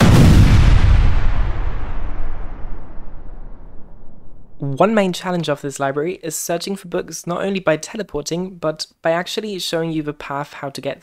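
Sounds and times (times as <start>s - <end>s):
deep cinematic boom: 0.0s - 5.2s.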